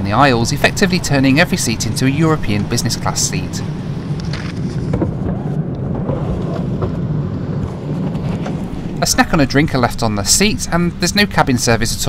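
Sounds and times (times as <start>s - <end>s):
airliner cabin rumble: 0.0s - 12.0s
camera rustling against clothing: 4.0s - 5.3s.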